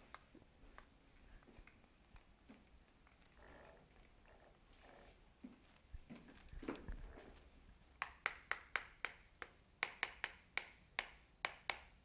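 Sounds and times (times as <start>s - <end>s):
chalk clicking on chalkboard: 8.0s - 12.0s.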